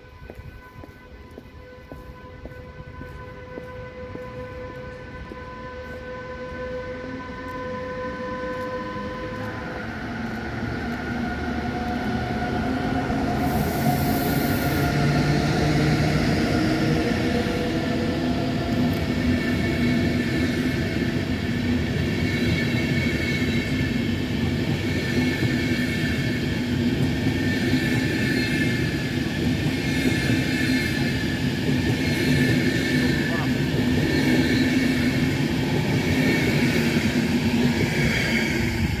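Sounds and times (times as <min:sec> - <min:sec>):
electric locomotive drive whining: 0:00.0 - 0:39.0
train coaches rolling on rails: 0:07.3 - 0:39.0.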